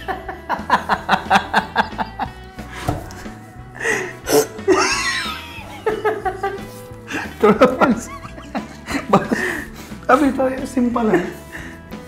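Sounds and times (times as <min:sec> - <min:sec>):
men laughing hard: 0:00.0 - 0:10.0
light background music: 0:00.0 - 0:12.0.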